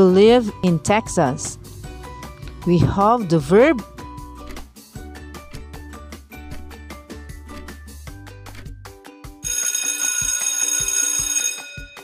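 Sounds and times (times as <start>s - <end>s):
light plucked background music: 0.0s - 12.0s
alarm clock bell ringing: 9.4s - 12.0s.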